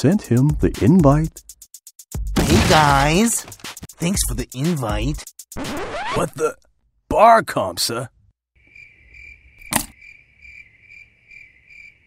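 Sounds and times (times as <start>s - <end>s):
crickets chirping: 8.6s - 12.0s.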